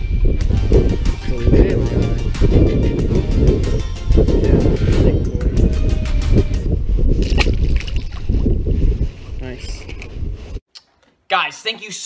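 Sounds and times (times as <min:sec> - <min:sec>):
wind buffeting microphone: 0:00.0 - 0:10.6.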